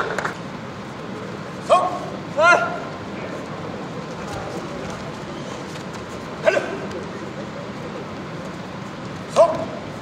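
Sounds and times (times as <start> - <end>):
sports hall background noise: 0.0 - 10.0
person shouting: 1.7 - 2.8, 6.4 - 6.8.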